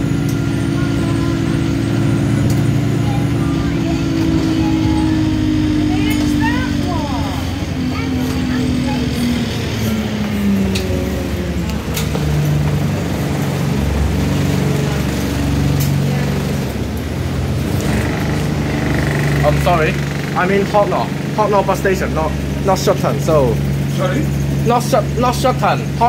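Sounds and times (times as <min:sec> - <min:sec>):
bus diesel engine: 0:00.0 - 0:26.0
faint voices: 0:00.1 - 0:17.0.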